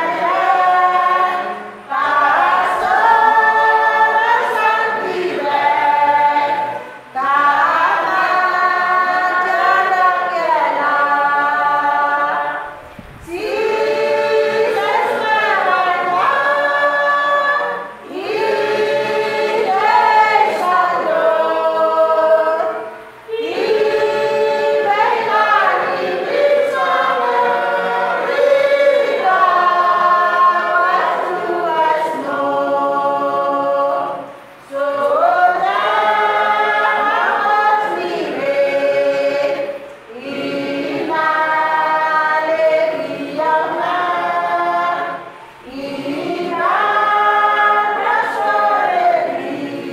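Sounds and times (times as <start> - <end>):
congregation singing a hymn: 0.0 - 49.9.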